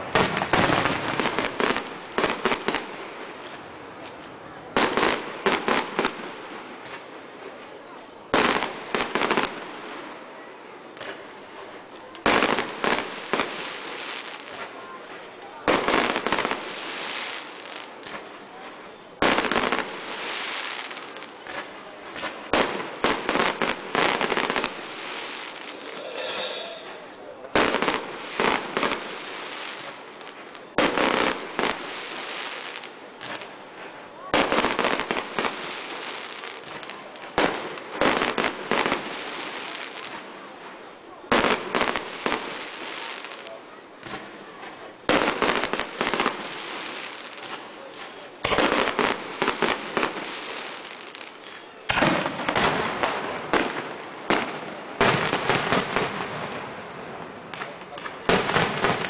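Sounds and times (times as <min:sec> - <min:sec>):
firework bangs: 0:00.0 - 0:03.1, 0:19.2 - 0:33.5, 0:34.3 - 0:40.2, 0:45.0 - 0:56.6, 0:57.5 - 0:59.0
firework crackling: 0:00.0 - 0:07.2, 0:11.0 - 0:56.7, 0:57.5 - 0:59.0.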